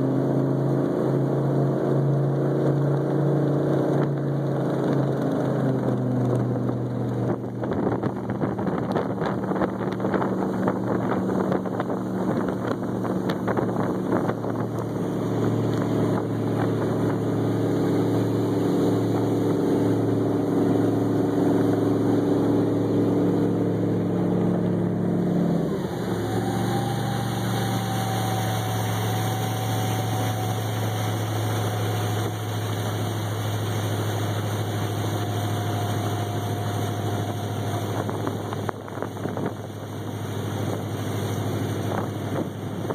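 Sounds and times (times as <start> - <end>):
boat engine running: 0.0 - 42.9.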